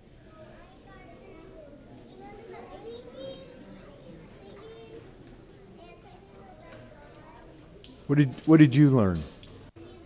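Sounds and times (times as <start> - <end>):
faint children's voices calling out: 0.0 - 8.6.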